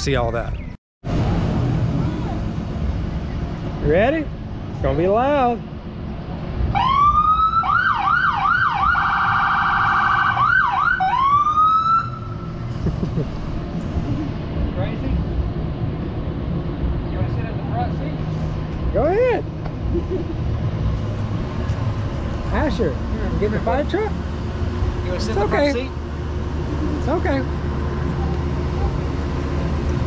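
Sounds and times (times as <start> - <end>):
low steady rumble: 0.0 - 30.0
electronic siren wailing and yelping: 6.8 - 12.4.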